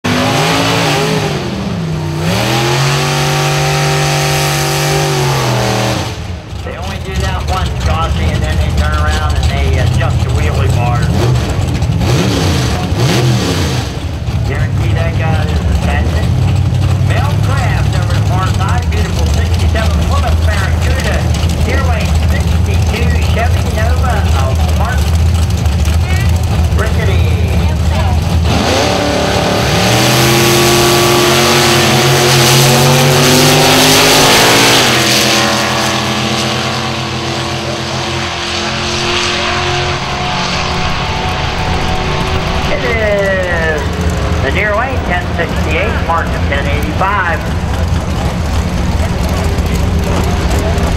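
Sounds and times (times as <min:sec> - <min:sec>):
race car engines revving: 0:00.0 - 0:50.9
race cars idling: 0:00.0 - 0:50.9.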